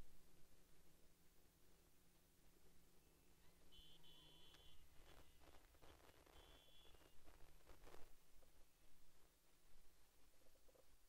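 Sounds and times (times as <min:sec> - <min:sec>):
faint high beeping tones: 0:03.4 - 0:05.6
faint ticks: 0:04.3 - 0:08.6.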